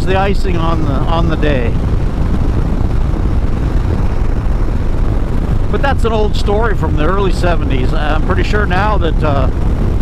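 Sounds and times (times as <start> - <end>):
motorcycle engine cruising: 0.0 - 10.0
wind rush on microphone: 0.0 - 10.0.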